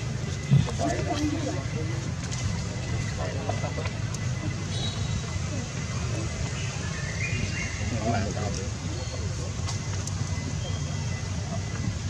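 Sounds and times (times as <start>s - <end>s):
faint human voices: 0.1s - 12.0s.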